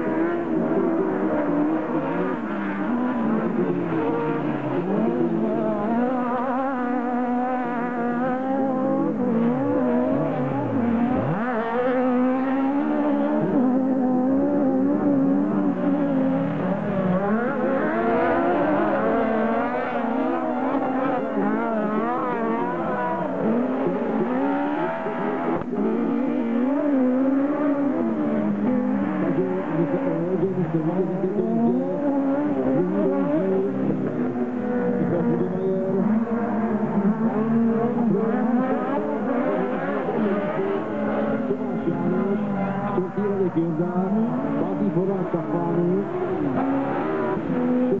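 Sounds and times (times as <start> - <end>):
buggy engines revving: 0.0 - 48.0.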